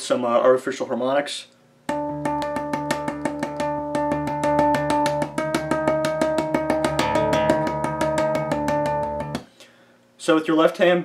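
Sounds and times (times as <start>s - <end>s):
electric bass tapped harmonics: 1.9s - 9.4s.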